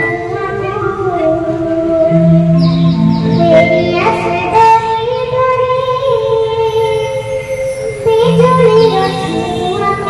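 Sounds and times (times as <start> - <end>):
girl singing into a microphone: 0.0 - 10.0
keyboard chords: 0.0 - 10.0.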